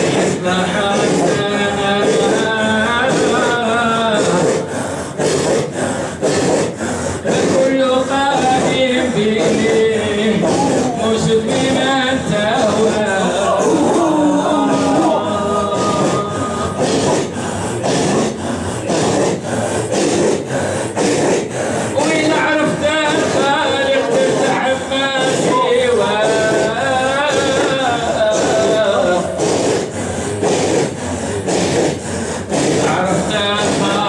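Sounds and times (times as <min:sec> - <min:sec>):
man singing: 0:00.0 - 0:04.7, 0:07.2 - 0:16.8, 0:22.0 - 0:29.4, 0:32.8 - 0:34.0
forced rhythmic breaths: 0:00.0 - 0:34.0
men chanting in unison: 0:00.0 - 0:34.0.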